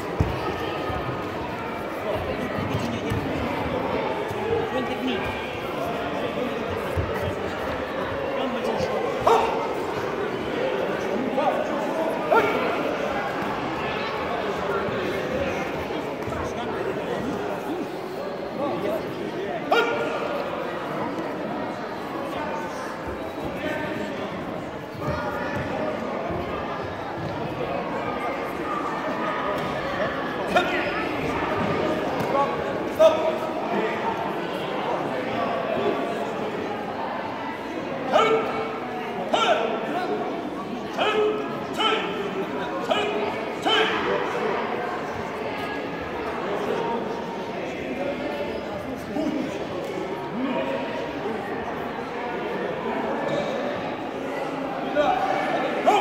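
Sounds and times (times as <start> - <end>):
murmur of voices: 0.0 - 56.0.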